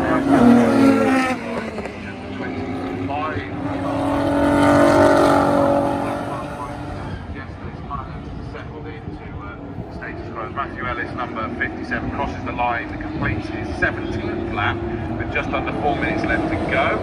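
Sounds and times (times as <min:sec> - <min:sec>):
racing cars passing by: 0:00.0 - 0:17.0.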